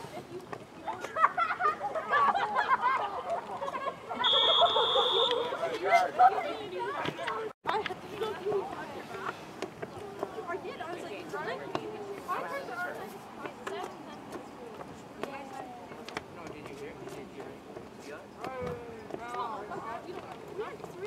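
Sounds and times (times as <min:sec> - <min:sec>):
people talking and calling out: 0:00.0 - 0:21.0.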